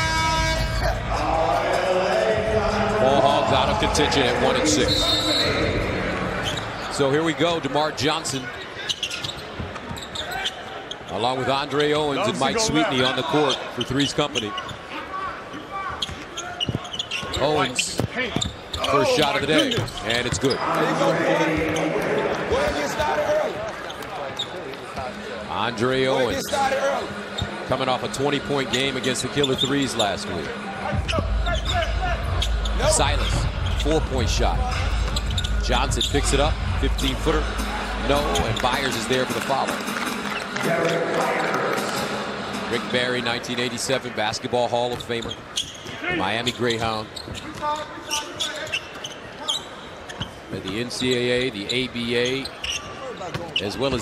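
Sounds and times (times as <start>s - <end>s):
crowd noise: 0.0s - 54.0s
arena voices: 0.8s - 7.4s.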